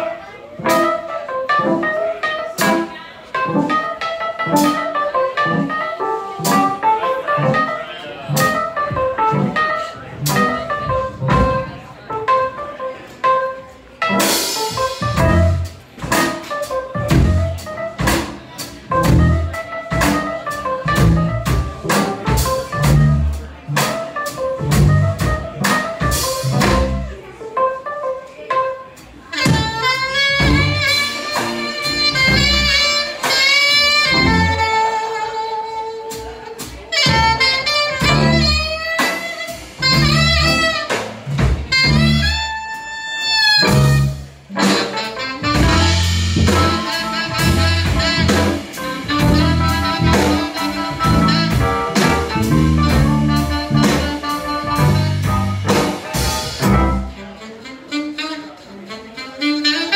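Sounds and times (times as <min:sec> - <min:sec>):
piano melody: 0:00.0 - 0:57.4
drums: 0:00.0 - 0:59.9
jazz band playing: 0:00.0 - 0:59.9.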